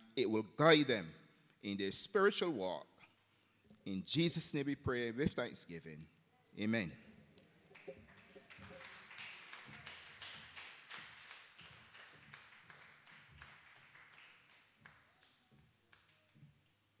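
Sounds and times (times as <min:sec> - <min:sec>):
faint scattered hand clapping: 0:07.0 - 0:17.0.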